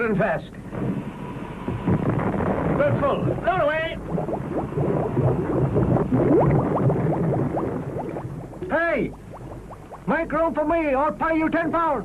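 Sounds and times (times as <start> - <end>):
low rumble: 0.7 - 10.1
water bubbling and gurgling: 1.8 - 10.3.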